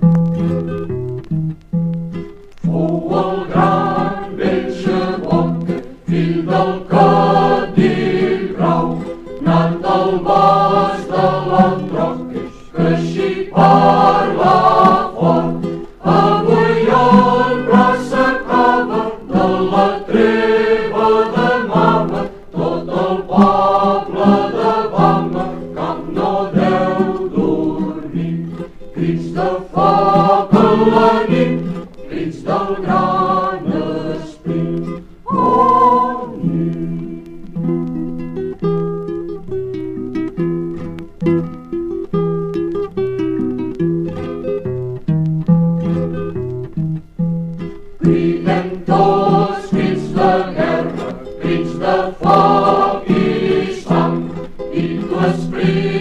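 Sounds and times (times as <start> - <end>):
acoustic guitar: 0.0 - 56.0
group singing folk song: 2.2 - 38.8, 47.5 - 56.0.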